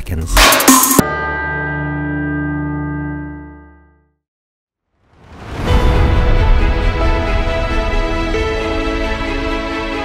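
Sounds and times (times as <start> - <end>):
bell-like ringing chord: 1.0 - 4.0.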